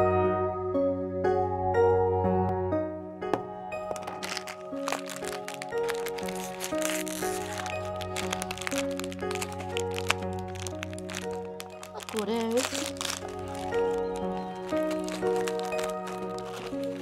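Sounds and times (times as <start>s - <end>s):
background music: 0.0s - 17.0s
plastic wrapper crinkling: 3.8s - 17.0s.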